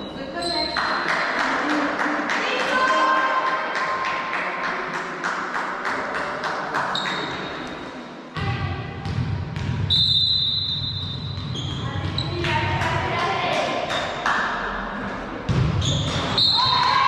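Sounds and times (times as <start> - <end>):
echoing voices: 0.0 - 9.0, 11.7 - 17.0
volleyballs bouncing on gym floor: 8.4 - 9.9, 10.7 - 14.6, 15.4 - 17.0
referee's whistle: 9.9 - 11.8, 15.8 - 17.0.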